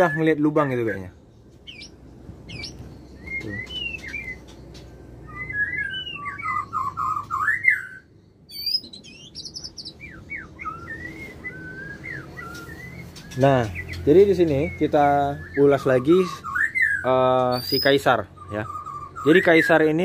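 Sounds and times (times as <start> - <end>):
bird singing whistles and chirps: 0.0 - 20.0.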